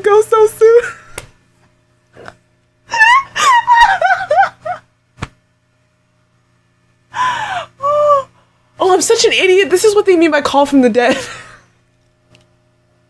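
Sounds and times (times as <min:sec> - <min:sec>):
woman laughing hard: 0:02.9 - 0:04.9.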